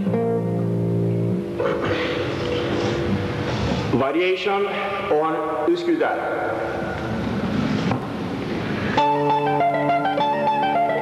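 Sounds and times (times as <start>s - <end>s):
guitar chord ringing: 0.0s - 1.6s, 9.0s - 11.0s
rustling noise: 2.3s - 4.0s, 7.4s - 9.0s.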